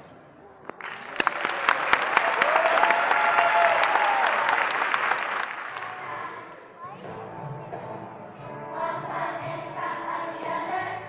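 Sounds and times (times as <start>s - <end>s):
audience applauding: 0.7s - 6.3s.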